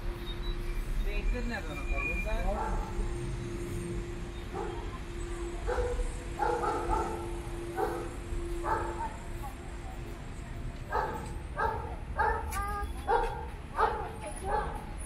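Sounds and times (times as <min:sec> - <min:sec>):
street rumble: 0:00.0 - 0:15.0.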